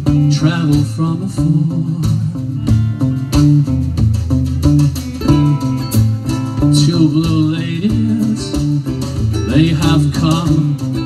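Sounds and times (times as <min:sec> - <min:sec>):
guitar: 0:00.0 - 0:11.0
live band playing: 0:00.0 - 0:11.0
steady drum beat: 0:00.0 - 0:11.0.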